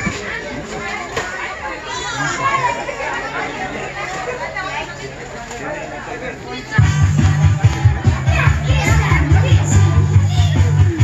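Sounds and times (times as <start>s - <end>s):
party guests chattering: 0.0s - 11.0s.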